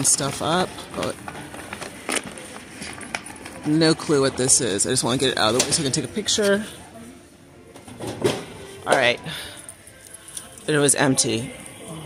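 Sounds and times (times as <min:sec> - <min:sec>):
faint background music: 0:00.0 - 0:12.0
woman speaking: 0:10.7 - 0:11.5.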